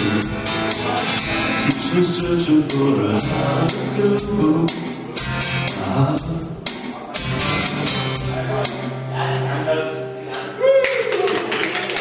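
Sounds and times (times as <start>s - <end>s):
live music over pa: 0.0s - 12.0s.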